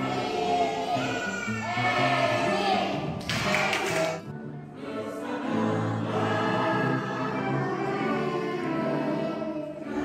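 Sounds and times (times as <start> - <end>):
group singing in chorus: 0.0 - 1.0, 1.8 - 10.0
musical accompaniment: 0.0 - 10.0.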